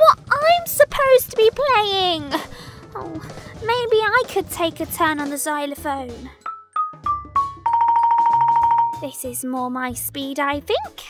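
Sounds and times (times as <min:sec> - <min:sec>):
toy xylophone notes: 0:06.5 - 0:09.2
xylophone roll: 0:06.5 - 0:09.2.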